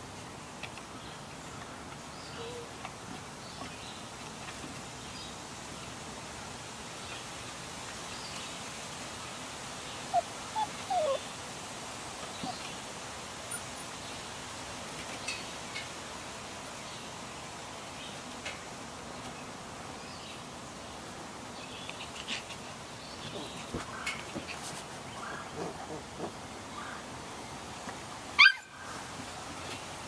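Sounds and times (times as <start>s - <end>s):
steady outdoor hiss: 0.0s - 30.0s
puppies yipping: 10.1s - 11.2s, 28.4s - 28.9s.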